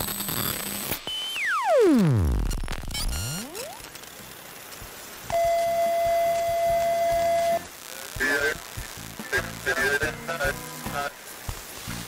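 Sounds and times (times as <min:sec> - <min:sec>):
static hiss: 0:00.0 - 0:12.0
faint steady hum: 0:01.4 - 0:12.0.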